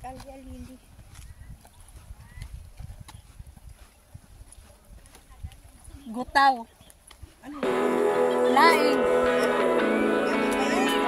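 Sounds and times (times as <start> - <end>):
footsteps on concrete: 0.0 - 6.1
wind rumble on microphone: 0.0 - 6.1.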